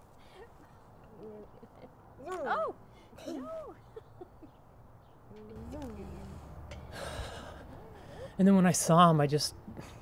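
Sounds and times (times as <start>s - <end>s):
person gasping: 6.9s - 8.4s.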